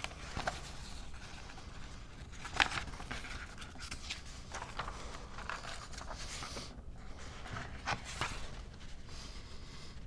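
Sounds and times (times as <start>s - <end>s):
faint room noise: 0.0s - 10.0s
paper rustling: 0.0s - 10.0s.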